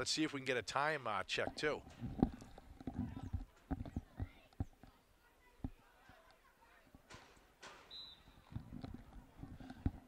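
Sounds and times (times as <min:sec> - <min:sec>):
short high-pitched whistle: 0:07.9 - 0:08.4.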